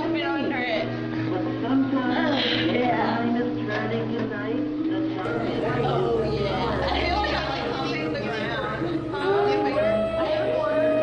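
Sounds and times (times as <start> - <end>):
voices chattering indistinctly: 0.0 - 11.0.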